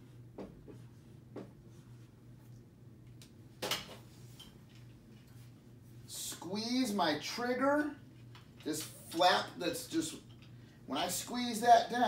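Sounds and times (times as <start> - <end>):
ceiling fan humming: 0.0 - 12.0.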